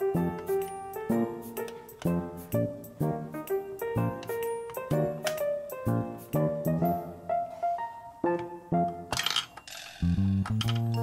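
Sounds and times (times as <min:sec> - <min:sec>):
light background music: 0:00.0 - 0:11.0.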